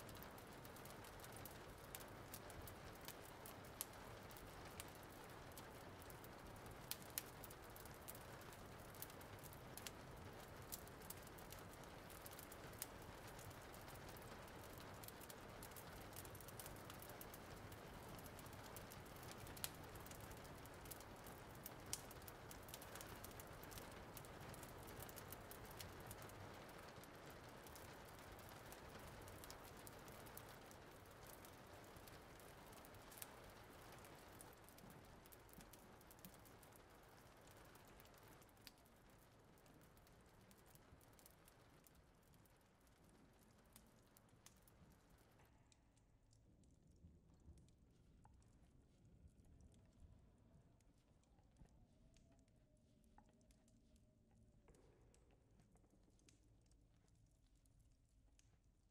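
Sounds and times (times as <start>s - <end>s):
raindrops clicking: 0.0s - 58.7s
rain patter: 0.0s - 58.9s.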